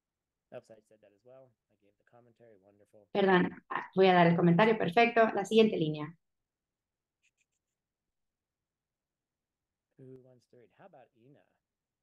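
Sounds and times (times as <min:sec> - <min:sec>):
man speaking: 0:00.6 - 0:03.1, 0:10.0 - 0:11.6.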